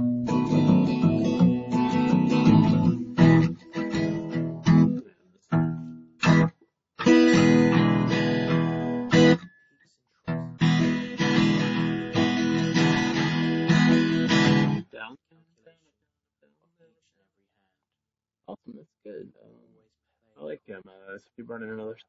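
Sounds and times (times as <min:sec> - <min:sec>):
acoustic guitar strummed chords: 0:00.0 - 0:09.7, 0:10.3 - 0:14.9.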